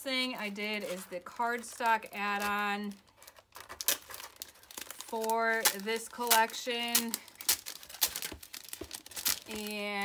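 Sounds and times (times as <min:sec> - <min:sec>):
plastic sleeve crinkling: 0:00.1 - 0:10.0.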